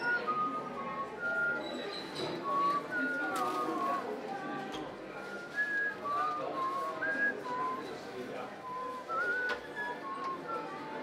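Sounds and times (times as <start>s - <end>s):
person whistling a tune: 0.0s - 4.1s, 5.2s - 11.0s
murmur of voices: 0.0s - 11.0s.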